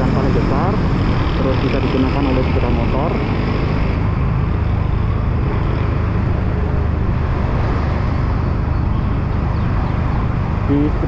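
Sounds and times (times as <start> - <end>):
road noise: 0.0 - 11.0
wind noise: 0.0 - 11.0.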